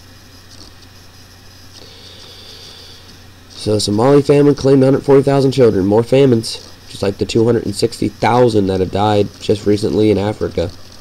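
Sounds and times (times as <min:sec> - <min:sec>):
faint hiss: 0:00.0 - 0:11.0
low hum: 0:00.0 - 0:11.0.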